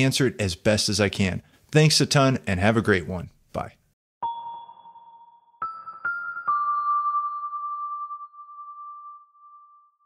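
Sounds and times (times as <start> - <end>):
chime jingle ringing tone: 4.2 - 10.0.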